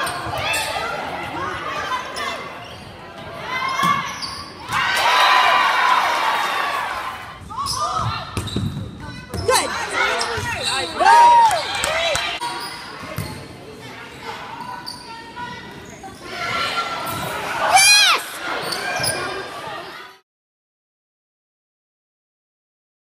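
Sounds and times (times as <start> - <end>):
voices in a hall: 0.0 - 20.2
sneakers squeaking on court floor: 1.9 - 4.7, 7.6 - 11.2, 12.4 - 17.5, 18.4 - 20.0.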